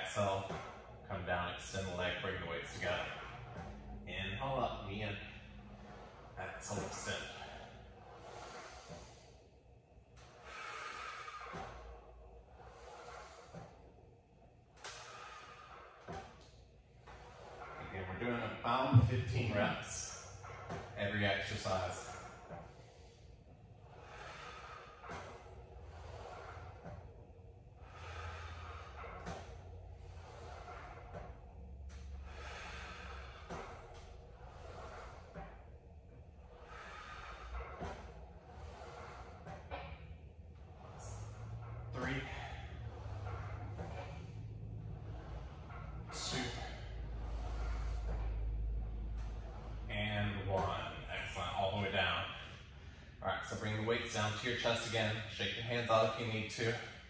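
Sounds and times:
man breathing while exercising: 0.0 - 53.2
steady low hum: 0.0 - 57.0.

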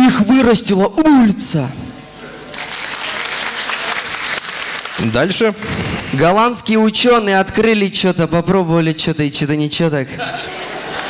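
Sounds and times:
audience applauding: 2.5 - 6.2, 10.5 - 11.0.

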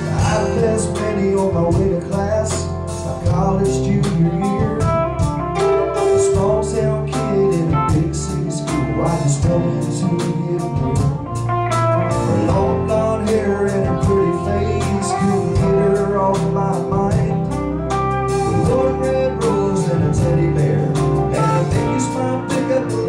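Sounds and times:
electric guitar lead: 0.0 - 23.0
live country-rock band playing: 0.0 - 23.0.

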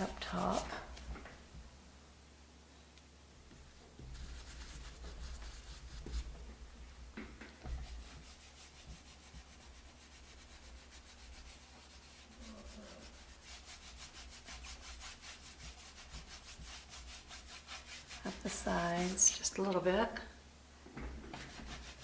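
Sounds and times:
paintbrush scrubbing wood: 0.0 - 1.0, 4.0 - 6.5, 7.6 - 19.6, 21.3 - 22.0.

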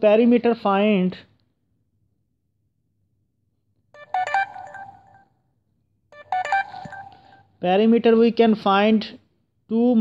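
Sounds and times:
electronic alert beeps: 4.0 - 5.2, 6.2 - 7.4.

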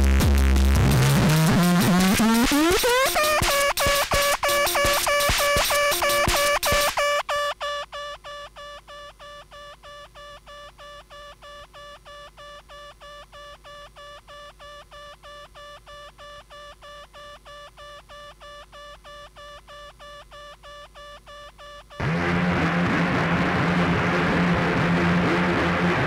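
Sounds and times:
pulsing synthesizer note: 22.0 - 26.0.

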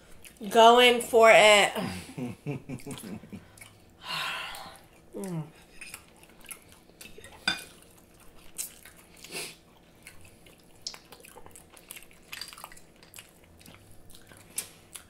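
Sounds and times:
chewing food: 0.0 - 0.4, 2.8 - 4.0, 4.7 - 15.0.

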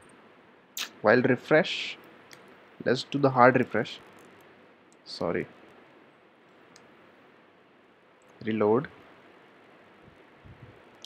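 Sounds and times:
microphone hiss: 0.0 - 11.0.

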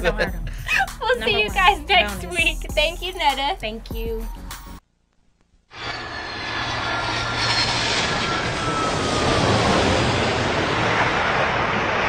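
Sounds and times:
faint falling whine: 5.7 - 11.2
jet airliner engines roaring: 5.7 - 12.0.

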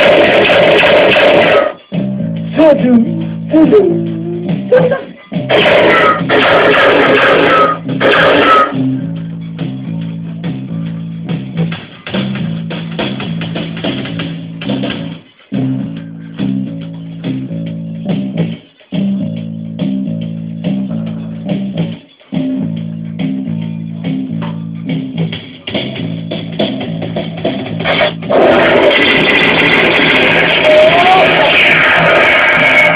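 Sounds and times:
experimental electronic music: 0.0 - 32.9.

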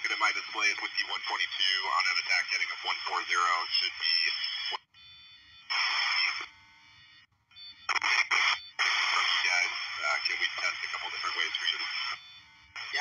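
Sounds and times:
pilot radio transmission: 0.0 - 4.8, 5.7 - 6.5, 7.8 - 13.0
radio static bursts: 0.0 - 4.8, 5.7 - 6.5, 7.9 - 13.0
faint steady radio tones: 0.0 - 13.0.

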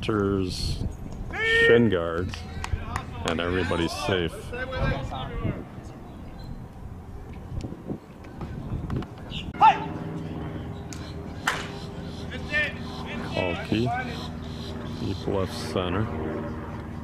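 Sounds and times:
voices: 0.0 - 7.4, 9.2 - 17.0.

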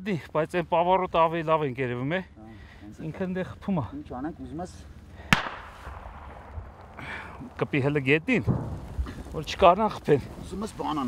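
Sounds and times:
sharp bang with long echo: 5.3 - 7.0, 8.4 - 9.0.

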